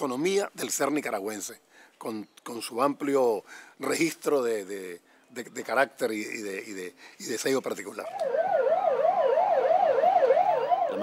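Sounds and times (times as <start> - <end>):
fast warbling siren: 8.1 - 11.0
slow wailing siren: 8.1 - 11.0.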